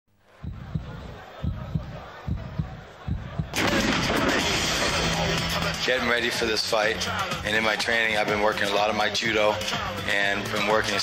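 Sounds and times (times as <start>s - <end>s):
heartbeat-style low thumps: 0.4s - 3.6s.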